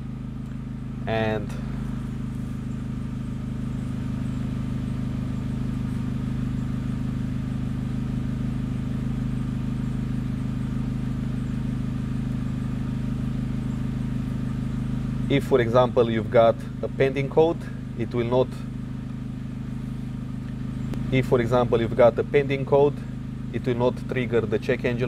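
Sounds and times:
car engine idling: 0.0s - 25.0s.

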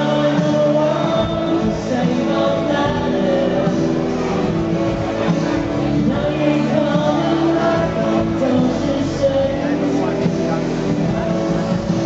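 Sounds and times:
man singing into a microphone: 0.0s - 4.8s, 5.7s - 12.0s
steady bass: 0.0s - 12.0s
strummed acoustic guitar: 0.0s - 12.0s.

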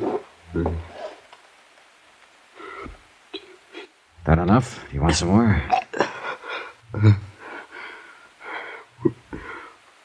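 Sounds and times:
man gulping water: 5.6s - 6.1s.

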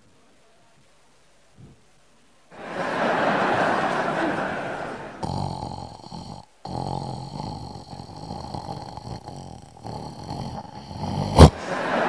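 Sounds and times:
man imitating snoring: 3.5s - 12.0s.

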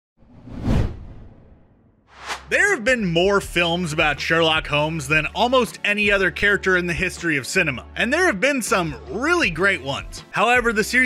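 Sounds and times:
deep whoosh: 0.2s - 2.6s.

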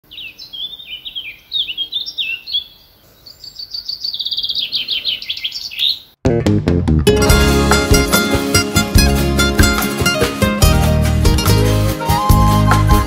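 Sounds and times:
bird chirps: 0.1s - 6.2s
songbirds whistling: 0.1s - 6.2s.

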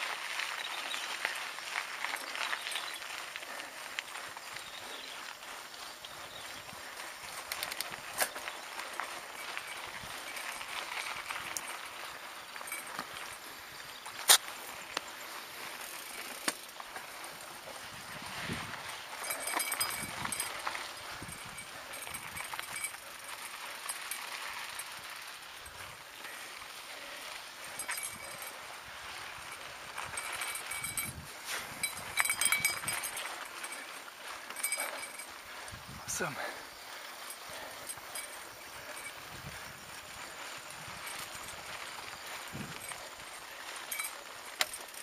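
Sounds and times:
bike rattles and clicks: 0.0s - 45.0s
bike tyres rolling on dirt: 0.0s - 45.0s.

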